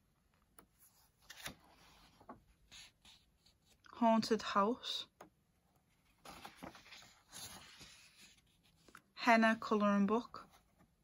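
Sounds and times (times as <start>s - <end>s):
paper pages rustling: 0.6s - 3.8s, 5.9s - 9.1s.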